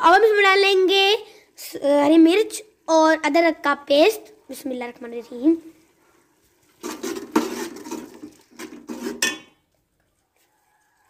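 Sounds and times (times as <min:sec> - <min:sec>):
metal ladle scraping a pot: 0:06.8 - 0:09.6
ladle clinking against pot: 0:09.1 - 0:09.6.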